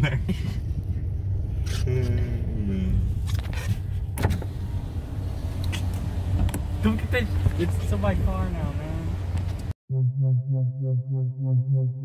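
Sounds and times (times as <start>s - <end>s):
car engine idling: 3.0s - 9.7s.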